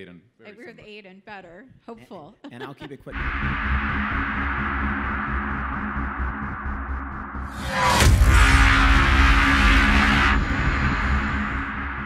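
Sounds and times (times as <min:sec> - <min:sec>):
low rumble and drone: 0:03.1 - 0:12.0
loud rushing whoosh: 0:03.2 - 0:12.0.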